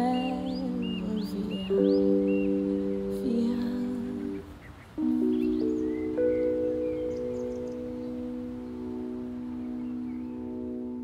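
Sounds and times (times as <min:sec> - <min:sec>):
organ chord: 0:00.0 - 0:11.0.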